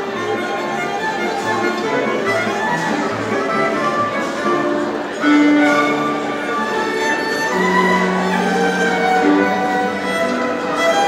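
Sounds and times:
violins playing melody: 0.0 - 11.0.

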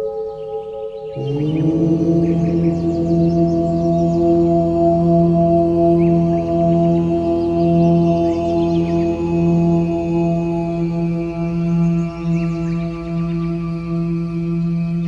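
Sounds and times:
low chanting voice: 0.0 - 15.0
ringing singing bowl drone: 0.0 - 15.0.

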